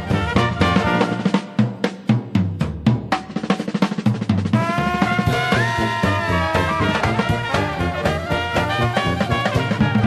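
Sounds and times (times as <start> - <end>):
snare and bass drum strokes: 0.0 - 10.0
horns playing held notes: 4.6 - 10.0.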